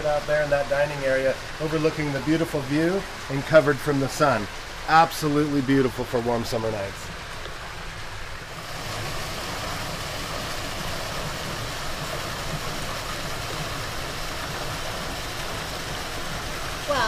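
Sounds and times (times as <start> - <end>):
water splashing into pool: 0.0 - 17.0.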